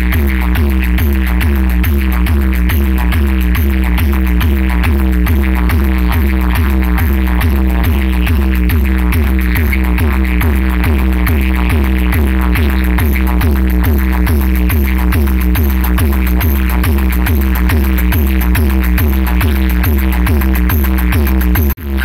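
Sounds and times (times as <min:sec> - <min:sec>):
loud electronic dance music: 0:00.0 - 0:22.0.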